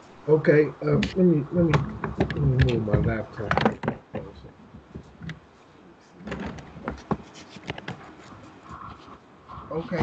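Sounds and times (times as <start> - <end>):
laptop being handled: 6.2 - 9.1.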